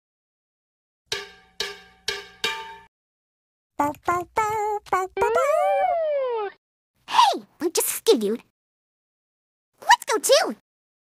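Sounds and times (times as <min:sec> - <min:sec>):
bell-like percussion notes: 0:01.1 - 0:02.9.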